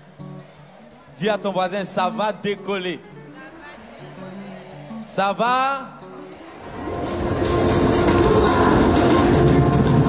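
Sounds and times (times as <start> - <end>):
live praise band playing: 6.6 - 10.0.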